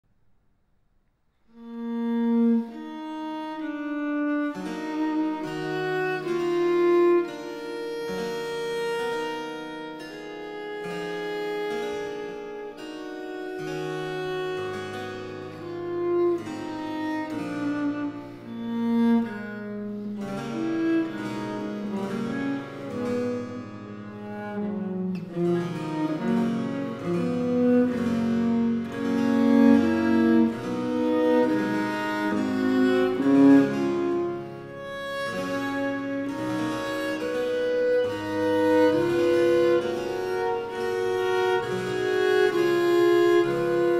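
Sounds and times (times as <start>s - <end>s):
solo cello melody: 1.4s - 43.9s
basso continuo accompaniment: 1.5s - 43.9s.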